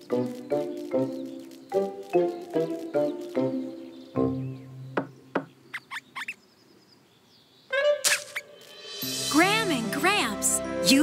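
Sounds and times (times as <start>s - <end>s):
cartoon sharp ticks: 0.1s - 3.6s.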